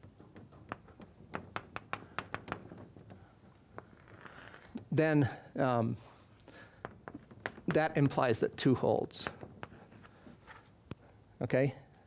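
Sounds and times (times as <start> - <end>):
chalk tapping on blackboard: 0.1 - 4.9, 6.8 - 8.6, 9.2 - 10.6.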